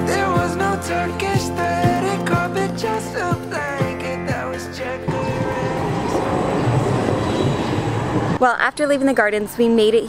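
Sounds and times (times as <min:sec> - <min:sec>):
background music: 0:00.0 - 0:10.0
tram rolling on tracks: 0:04.8 - 0:08.6.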